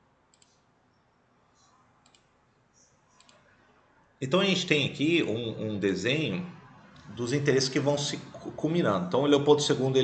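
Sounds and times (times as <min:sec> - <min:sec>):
faint computer mouse clicks: 0:00.3 - 0:00.6, 0:01.6 - 0:03.4.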